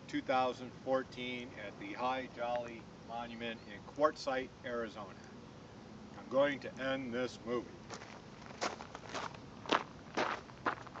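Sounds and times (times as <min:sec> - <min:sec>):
footsteps on gravel: 0:07.8 - 0:11.0.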